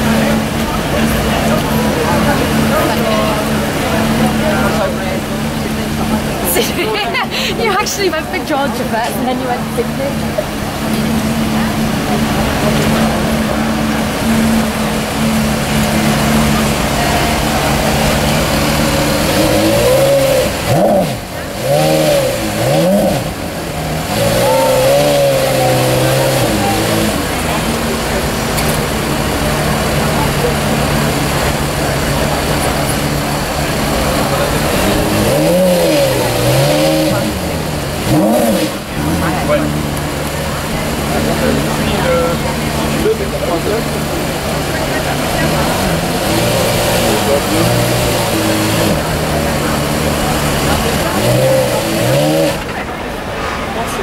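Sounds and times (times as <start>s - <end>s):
car engine idling and revving: 0.0s - 54.0s.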